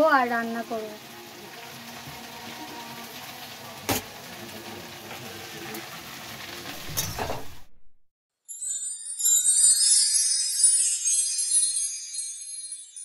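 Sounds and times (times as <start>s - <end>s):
vegetables sizzling in a wok: 0.0s - 7.5s.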